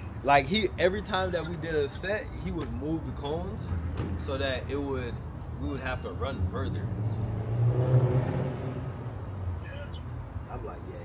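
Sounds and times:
vehicle engine passing by: 3.6s - 9.7s.

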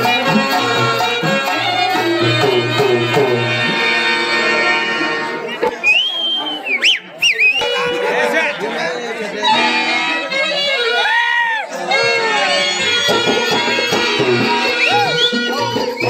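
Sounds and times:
harmonium sustained chord: 0.1s - 5.6s, 7.9s - 10.6s
voices: 4.5s - 16.0s.

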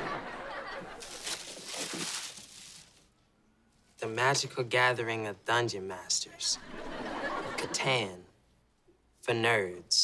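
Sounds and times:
tissue paper rustling and crinkling: 1.0s - 3.1s.

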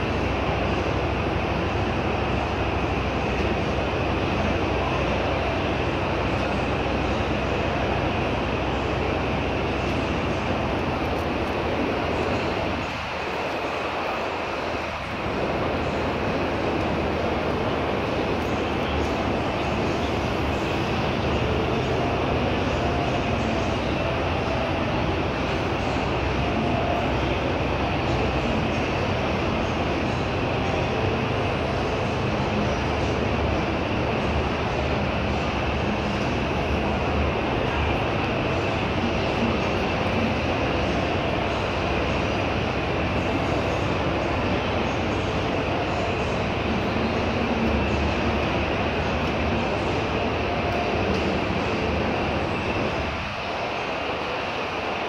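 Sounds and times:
loud mixed background din: 0.0s - 55.0s.

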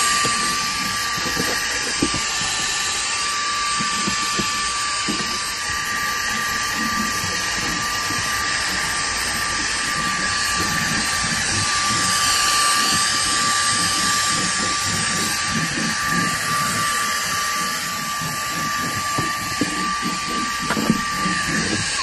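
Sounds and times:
handheld vacuum running: 0.0s - 22.0s.

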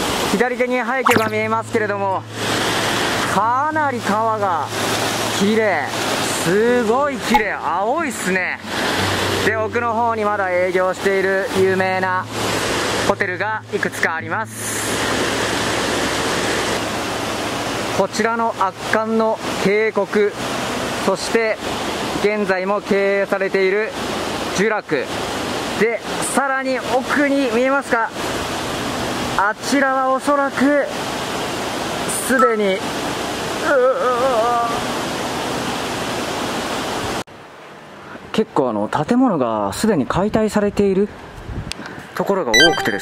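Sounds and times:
river rushing over rocks: 0.0s - 38.0s
person's wavering vocal sound: 33.6s - 34.9s.

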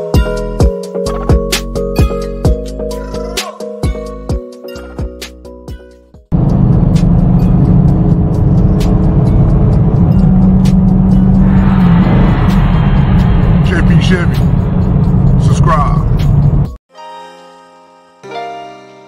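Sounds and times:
hip-hop music with vocals: 0.0s - 6.1s, 11.2s - 14.7s
car engine and road noise: 6.3s - 16.8s.

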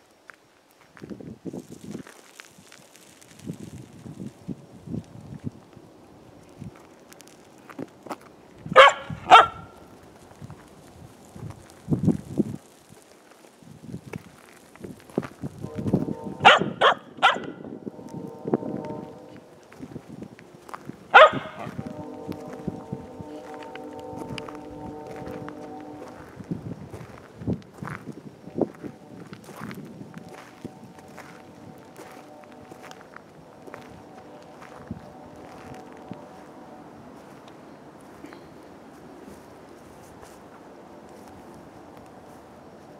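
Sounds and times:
puppy barking: 8.8s - 9.7s, 16.4s - 17.6s, 21.1s - 21.8s
steady sustained tones: 15.5s - 42.9s.

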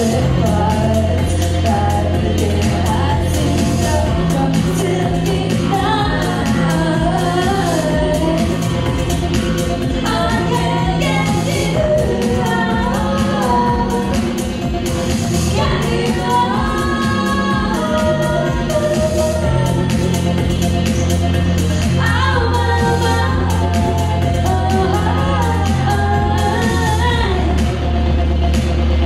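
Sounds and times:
woman singing: 0.0s - 27.7s
electric bass notes: 0.0s - 29.0s.

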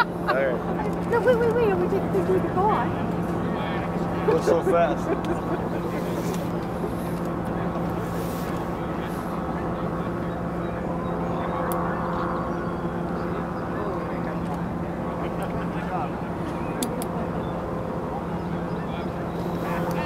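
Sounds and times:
steady engine hum: 0.0s - 20.0s
voices murmuring: 0.0s - 20.0s.

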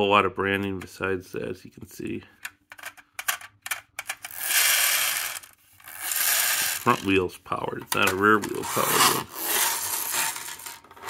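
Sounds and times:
toy friction motor whirring: 4.2s - 7.1s, 8.5s - 11.0s.

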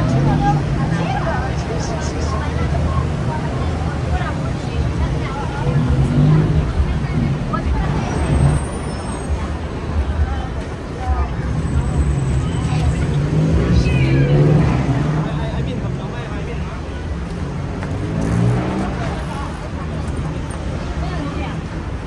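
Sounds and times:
crowd chattering: 0.0s - 22.0s
low rumble of vehicle engines: 0.0s - 22.0s.

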